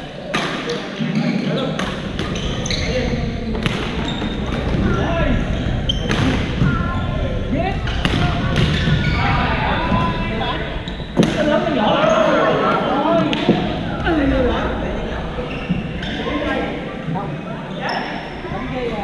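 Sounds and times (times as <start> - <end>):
chatter of many players: 0.0 - 19.0.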